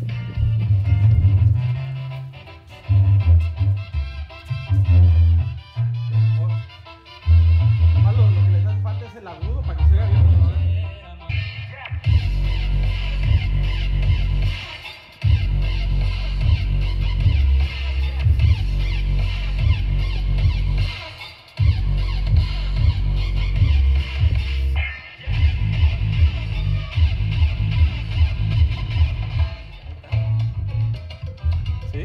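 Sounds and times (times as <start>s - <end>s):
bass-heavy music over loudspeakers: 0.0s - 32.0s.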